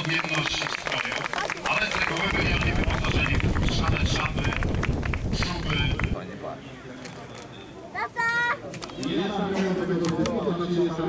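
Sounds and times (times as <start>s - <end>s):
people talking: 0.0s - 4.7s, 5.3s - 11.0s.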